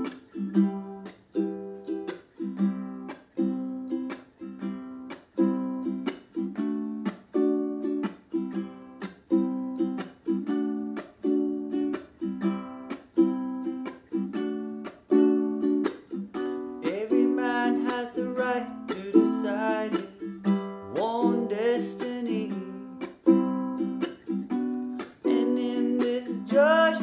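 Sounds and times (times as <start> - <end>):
ukulele strummed reggae rhythm: 0.0 - 27.0
man singing: 16.8 - 23.5, 25.0 - 27.0.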